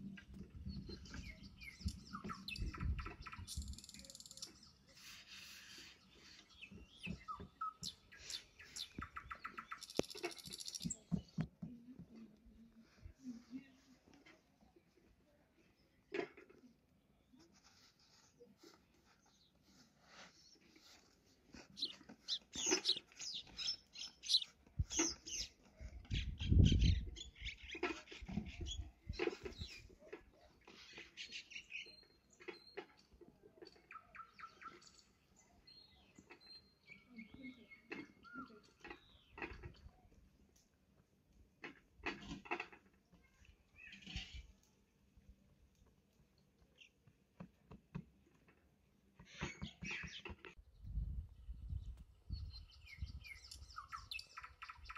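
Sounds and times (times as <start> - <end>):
small birds chirping: 0.0 - 54.9.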